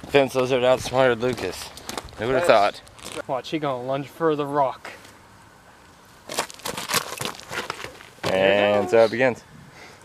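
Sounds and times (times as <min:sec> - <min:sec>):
gravel crunching and clicking: 0:00.0 - 0:03.3, 0:06.2 - 0:08.6.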